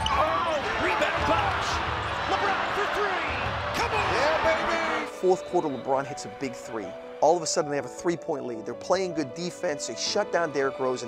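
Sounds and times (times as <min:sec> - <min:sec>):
crowd noise: 0:00.0 - 0:07.4.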